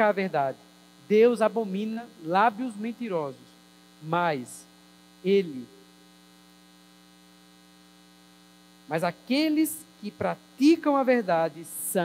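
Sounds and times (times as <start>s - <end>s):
man speaking: 0.0s - 3.4s, 4.0s - 5.8s, 8.9s - 12.0s
faint mains hum: 0.0s - 12.0s.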